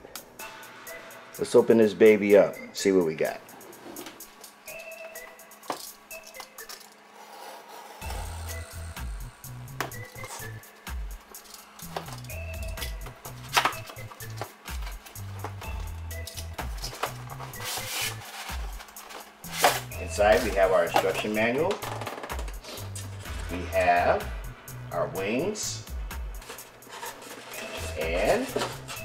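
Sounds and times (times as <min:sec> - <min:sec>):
background music: 0:00.0 - 0:29.0.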